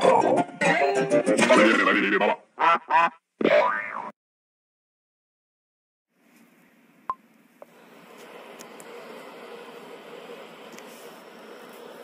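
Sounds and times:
faint hiss: 6.2s - 12.0s.

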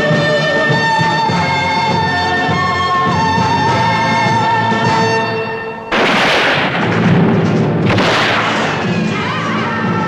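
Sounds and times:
orchestral film music: 0.0s - 10.0s
loud explosive blasts: 5.9s - 9.0s.

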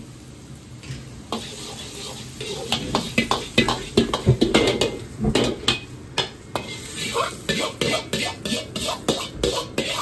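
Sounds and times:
onion sizzling in oil: 0.0s - 10.0s
ladle clacking against wok: 1.4s - 10.0s.

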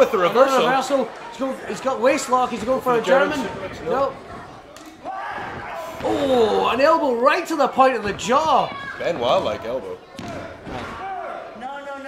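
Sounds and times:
crowd noise in large hall: 0.0s - 12.0s.

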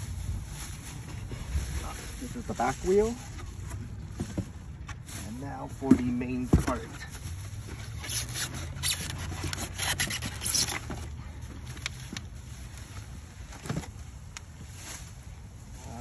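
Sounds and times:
foam rubbing: 5.2s - 11.0s.

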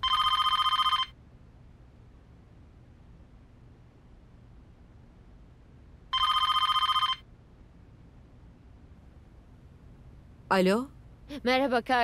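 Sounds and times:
telephone ringing: 0.0s - 1.2s, 6.1s - 7.3s.

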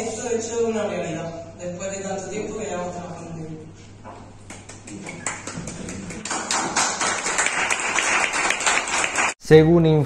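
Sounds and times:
people applauding: 4.5s - 9.4s.

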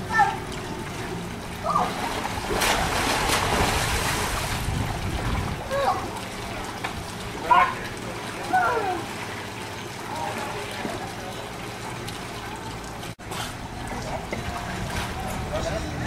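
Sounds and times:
water splashing in a pool: 0.0s - 16.0s.

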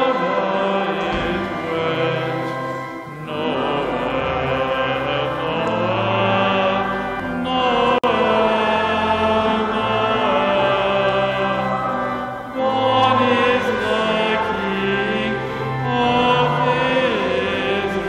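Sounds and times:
congregation singing a carol: 0.0s - 18.0s.

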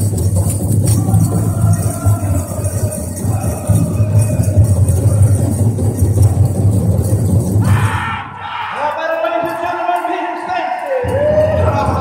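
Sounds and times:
big drum pounding fast beat: 0.0s - 8.2s, 11.0s - 12.0s.

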